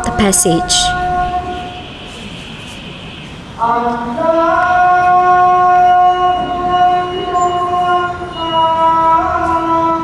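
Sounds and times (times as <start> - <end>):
voice chanting prayer: 0.0 - 1.7.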